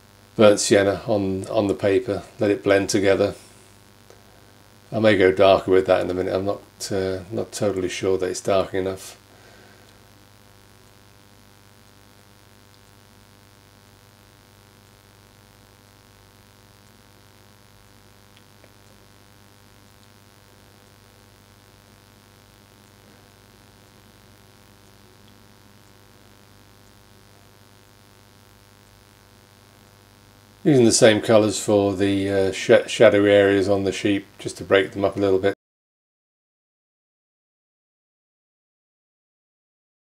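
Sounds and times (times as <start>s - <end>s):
light hiss: 0.0s - 35.3s
faint mains hum: 0.0s - 35.6s
tiny ticks: 18.3s - 19.0s.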